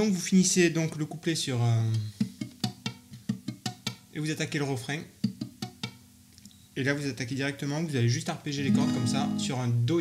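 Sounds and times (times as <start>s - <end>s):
fingerpicked acoustic guitar: 1.9s - 4.1s, 5.1s - 6.0s, 8.6s - 9.9s.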